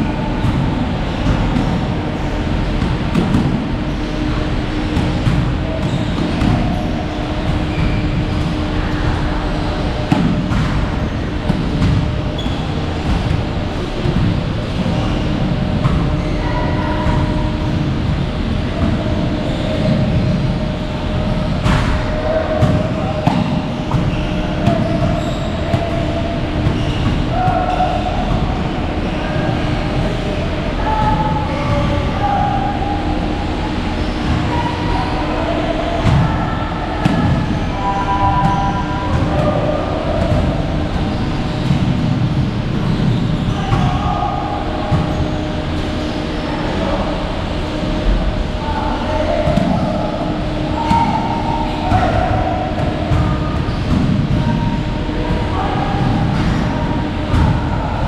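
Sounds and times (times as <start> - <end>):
faint music or voices: 0.0 - 58.0.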